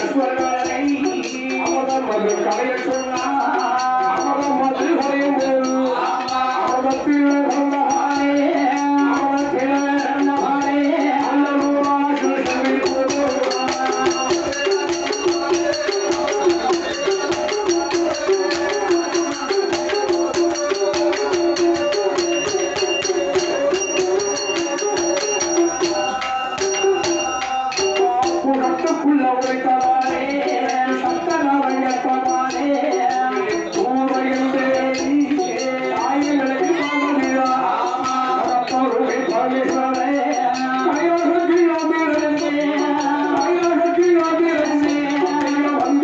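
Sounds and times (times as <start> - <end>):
bells jingling: 0.0 - 46.0
quick percussion beat: 0.0 - 46.0
wavering melody: 0.0 - 46.0.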